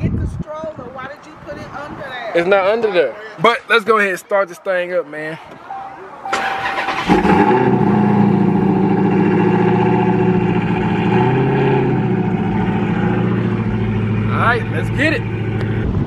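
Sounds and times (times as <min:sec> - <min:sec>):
car engine idling: 0:06.2 - 0:16.0
car starter cranking: 0:06.3 - 0:10.4.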